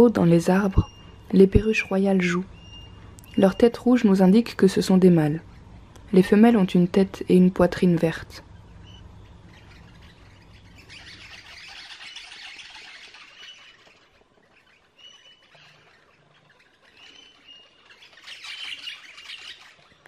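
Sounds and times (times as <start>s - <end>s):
parrots squawking: 8.4s - 20.0s.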